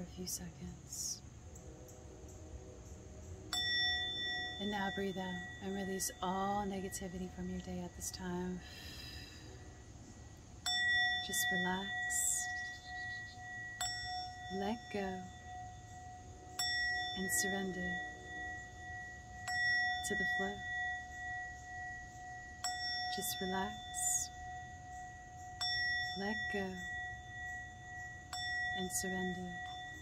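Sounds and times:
singing bowl struck and ringing: 0:03.5 - 0:08.6, 0:10.6 - 0:30.0.

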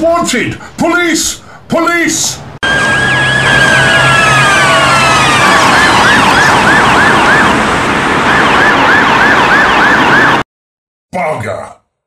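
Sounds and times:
police siren wail: 0:02.6 - 0:10.4
police siren yelp: 0:02.6 - 0:10.4.

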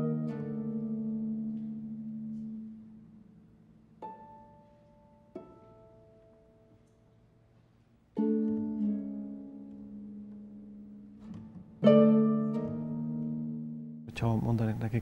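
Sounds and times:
harp playing: 0:00.0 - 0:07.1, 0:08.0 - 0:14.2.

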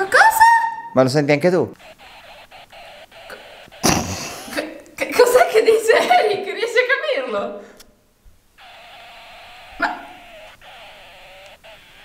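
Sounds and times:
toy doll garbled buzzing tone: 0:00.0 - 0:00.9, 0:01.8 - 0:06.1, 0:08.6 - 0:12.0.

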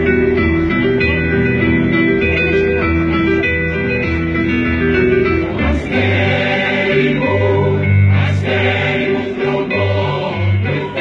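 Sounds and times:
mixed choir singing: 0:05.5 - 0:11.0.

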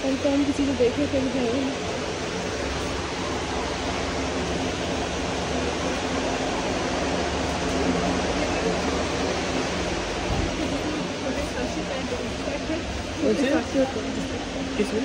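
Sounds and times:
faint voices: 0:00.0 - 0:15.0
steady room hiss: 0:00.0 - 0:15.0.

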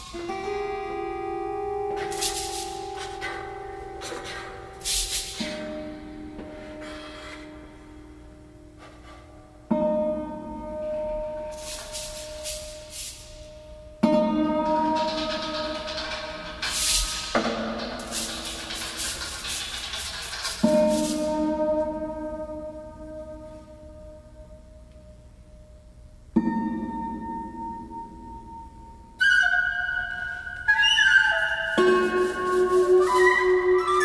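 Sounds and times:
percussion: 0:00.0 - 0:00.8, 0:01.4 - 0:07.6, 0:08.8 - 0:23.6, 0:26.3 - 0:34.0
shimmering hiss: 0:00.0 - 0:08.9, 0:10.8 - 0:14.0, 0:15.2 - 0:24.8.

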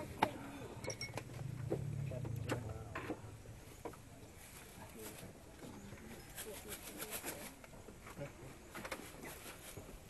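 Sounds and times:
faint background voices: 0:01.8 - 0:10.0.

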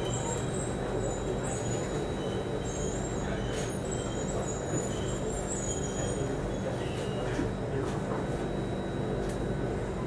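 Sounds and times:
high-pitched wheel squeals: 0:03.9 - 0:06.2.

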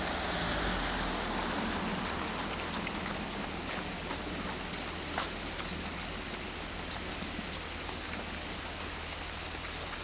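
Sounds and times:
runners' footfalls on asphalt: 0:01.1 - 0:10.0.

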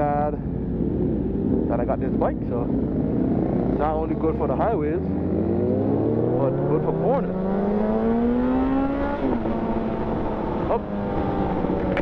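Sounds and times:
motorcycle engine revving: 0:02.6 - 0:12.0.

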